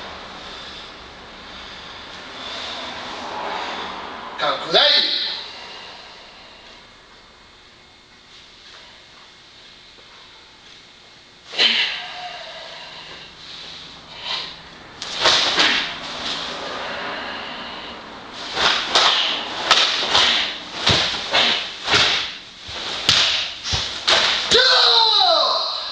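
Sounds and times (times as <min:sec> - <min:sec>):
fabric sleeves snapping: 0:18.6 - 0:24.5
bare feet thudding on floor: 0:18.6 - 0:24.6.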